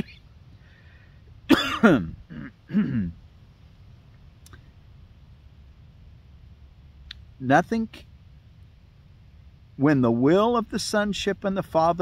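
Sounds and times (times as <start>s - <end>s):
man clearing throat: 1.5s - 3.2s.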